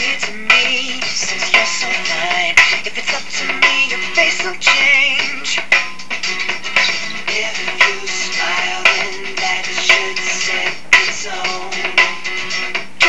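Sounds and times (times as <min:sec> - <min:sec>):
processed singing over dance beat: 0:00.0 - 0:13.0.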